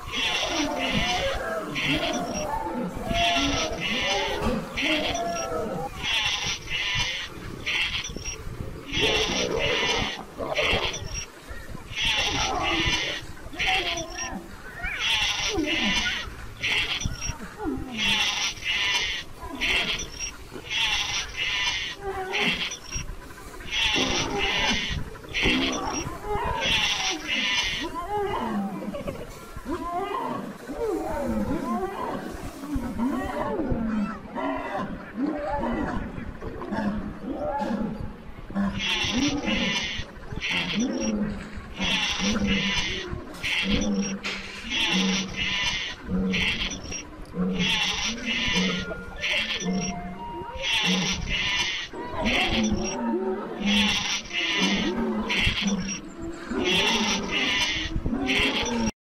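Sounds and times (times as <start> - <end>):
lions growling and calling: 0.0 - 59.0.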